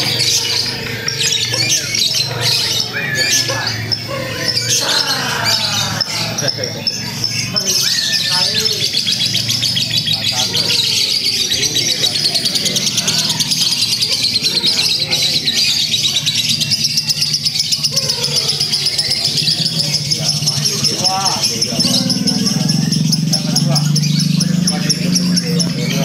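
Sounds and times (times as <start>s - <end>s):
lovebird trilling: 0.0s - 26.0s.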